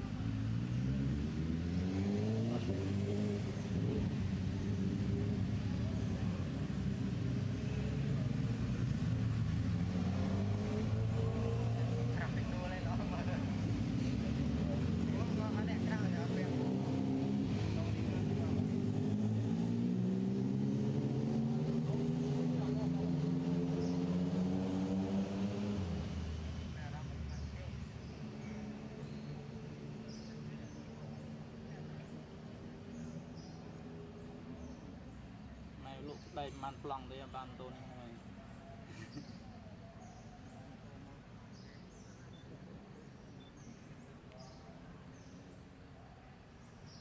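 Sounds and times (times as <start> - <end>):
vehicle engines revving: 0.0 - 47.0.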